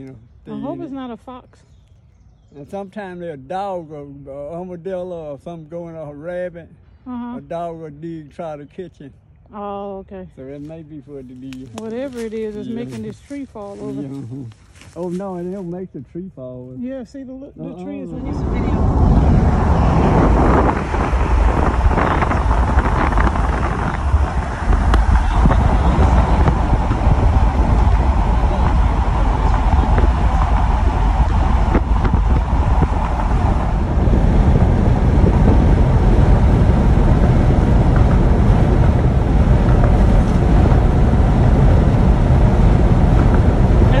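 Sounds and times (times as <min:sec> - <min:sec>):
wind rumble on microphone: 0:00.0 - 0:08.2, 0:10.3 - 0:15.6, 0:17.6 - 0:44.0
road noise: 0:00.0 - 0:16.7, 0:17.7 - 0:44.0.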